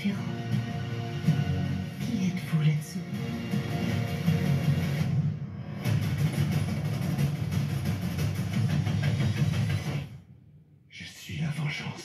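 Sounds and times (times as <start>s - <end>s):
dark trailer music with low pulse: 0.0s - 10.7s.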